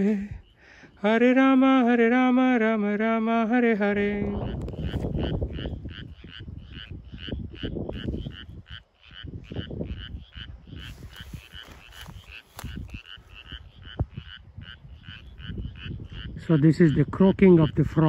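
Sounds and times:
frogs croaking: 0:00.0 - 0:18.0.

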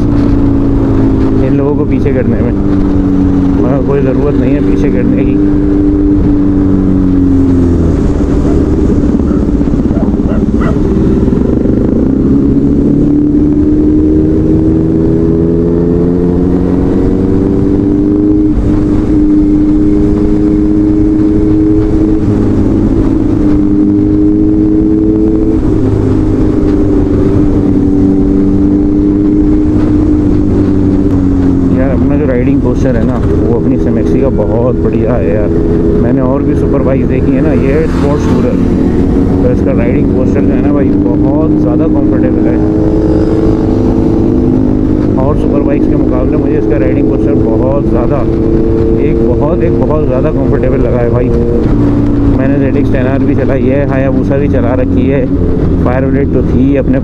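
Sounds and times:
motorcycle engine cruising: 0:00.0 - 0:57.0.

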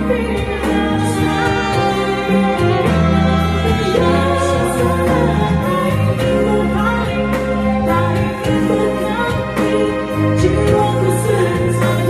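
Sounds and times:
bass: 0:00.0 - 0:12.0
drums: 0:00.0 - 0:12.0
person singing: 0:00.0 - 0:12.0
piano: 0:00.0 - 0:12.0.

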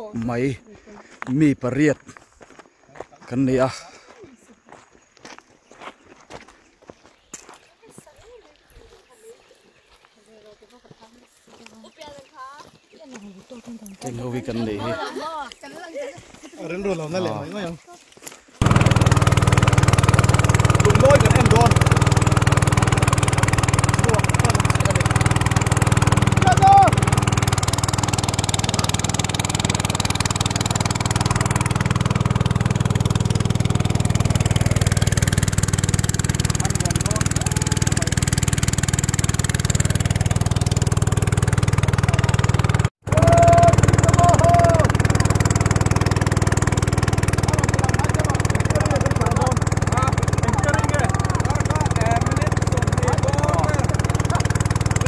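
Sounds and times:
outboard motor humming: 0:18.6 - 0:55.0
people talking: 0:20.8 - 0:21.8, 0:23.4 - 0:25.1, 0:26.4 - 0:27.0, 0:36.6 - 0:38.2, 0:43.2 - 0:44.9, 0:47.4 - 0:54.5.

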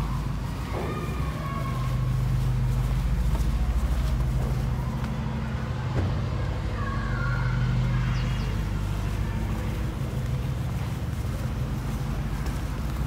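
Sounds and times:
vehicle engine humming: 0:00.0 - 0:13.0.

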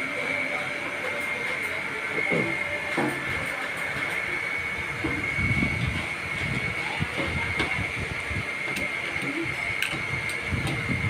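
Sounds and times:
high whine: 0:00.0 - 0:11.0
workshop machinery humming: 0:00.0 - 0:11.0.

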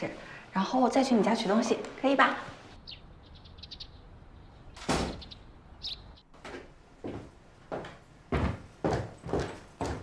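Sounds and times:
birds chirping: 0:02.8 - 0:06.4
heavy footsteps on wooden stairs: 0:06.4 - 0:10.0.

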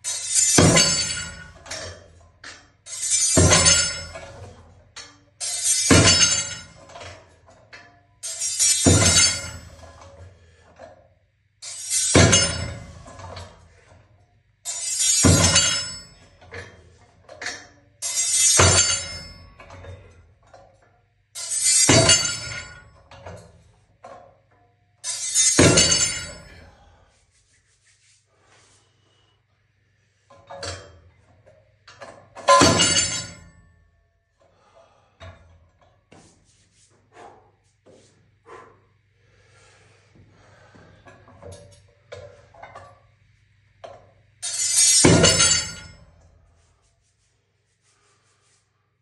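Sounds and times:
weight plates clanking: 0:00.0 - 0:04.6, 0:05.4 - 0:07.2, 0:11.6 - 0:13.6, 0:14.7 - 0:20.1, 0:21.4 - 0:24.2, 0:25.0 - 0:26.8, 0:32.0 - 0:33.6, 0:43.8 - 0:46.1.

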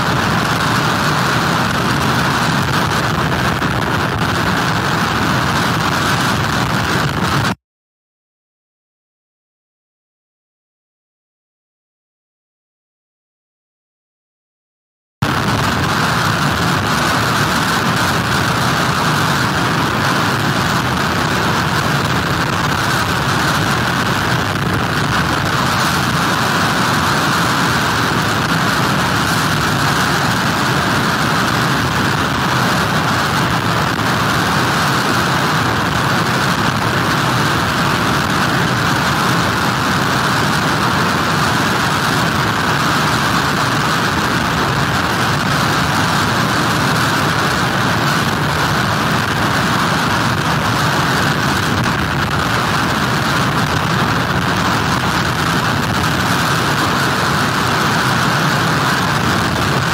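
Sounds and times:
heavy surf: 0:00.0 - 0:07.6, 0:15.2 - 0:59.9
hurricane wind: 0:00.0 - 0:07.6, 0:15.2 - 0:59.9.

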